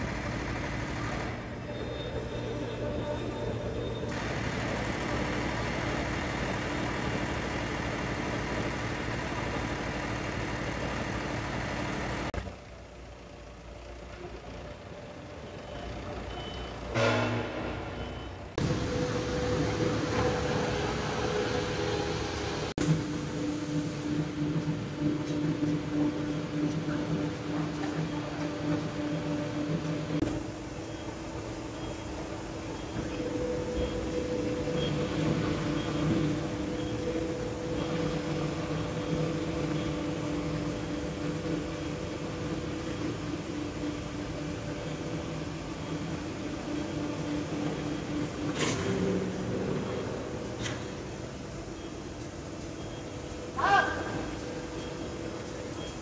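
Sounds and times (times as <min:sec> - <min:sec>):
forklift engine running: 0:00.0 - 0:56.0
machinery humming: 0:00.0 - 0:56.0
repeating warning beep: 0:15.5 - 0:20.9, 0:30.8 - 0:43.0.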